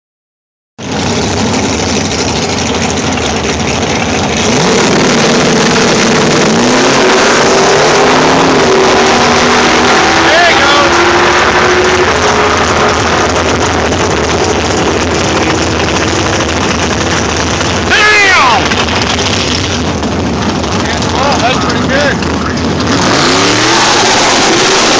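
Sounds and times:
race car engine at full throttle: 0:00.8 - 0:24.9
people shouting: 0:17.9 - 0:18.7.

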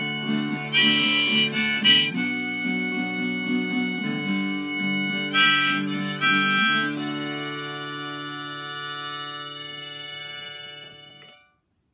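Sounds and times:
harmonica and acoustic guitar chord: 0:00.0 - 0:11.7.

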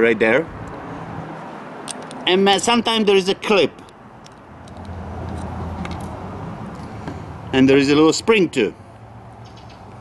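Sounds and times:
vehicle engine rumble: 0:03.7 - 0:10.0.

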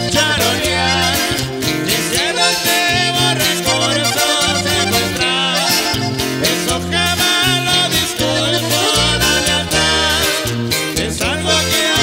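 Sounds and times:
accordion melody: 0:00.0 - 0:12.0
electric bass line: 0:00.0 - 0:12.0
strummed acoustic guitar: 0:00.0 - 0:12.0.

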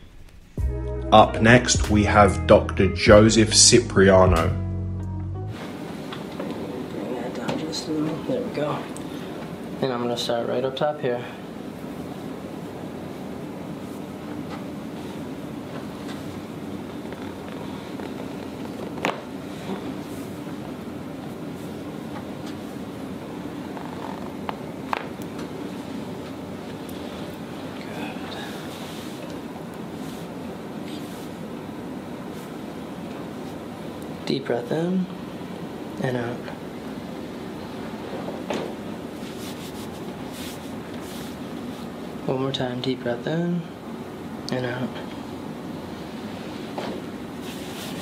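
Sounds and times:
low background hum: 0:00.0 - 0:48.0
steady room hiss: 0:00.0 - 0:48.0
spinal joints popping: 0:17.0 - 0:19.3, 0:23.7 - 0:25.2.

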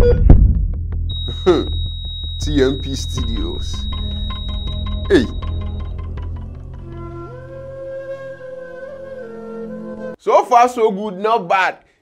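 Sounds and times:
steady high electronic tone: 0:01.1 - 0:06.1.

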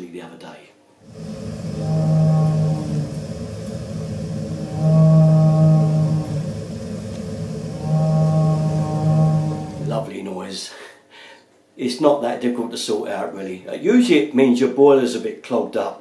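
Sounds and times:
boiler droning hum: 0:01.0 - 0:10.3.

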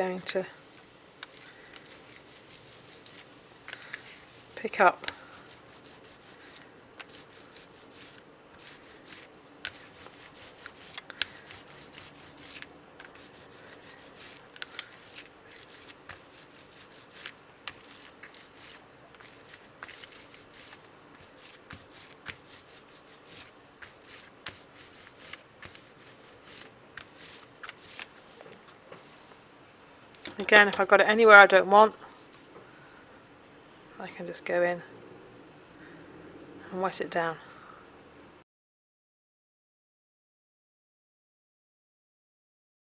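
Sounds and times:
brayer rubbing over textured paper: 0:00.8 - 0:29.8, 0:30.4 - 0:32.5, 0:33.1 - 0:34.4.

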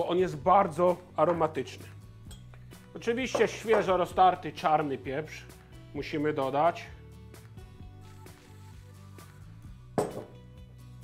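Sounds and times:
pepper mill knocking on wood: 0:03.3 - 0:04.0, 0:10.0 - 0:10.3.

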